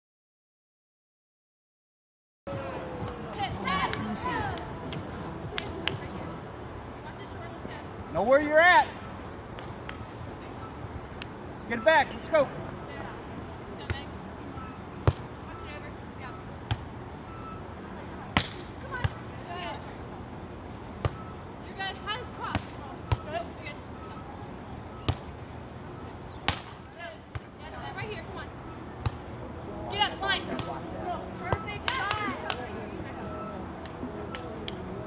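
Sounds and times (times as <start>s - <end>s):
hands slapping volleyball: 31.8s - 32.7s.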